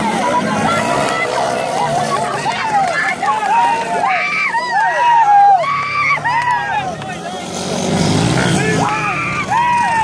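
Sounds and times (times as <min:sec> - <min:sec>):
dirt bike passing close: 0:00.0 - 0:05.1, 0:05.7 - 0:10.0
dirt bike engines revving: 0:00.0 - 0:10.0.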